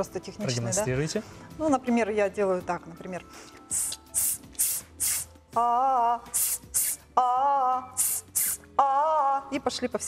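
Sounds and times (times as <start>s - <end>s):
woman hissing exhales: 3.7s - 5.3s, 6.3s - 7.0s, 8.0s - 8.6s.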